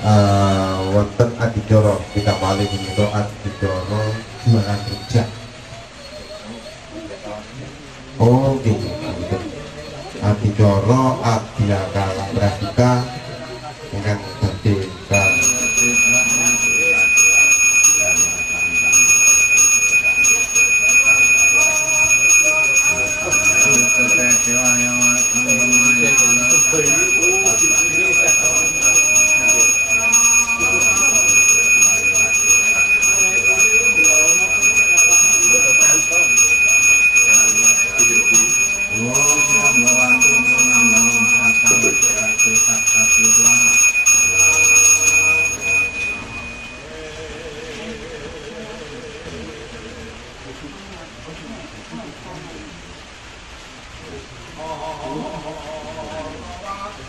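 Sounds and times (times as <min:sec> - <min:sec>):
hand bell ringing: 0:15.1 - 0:46.9.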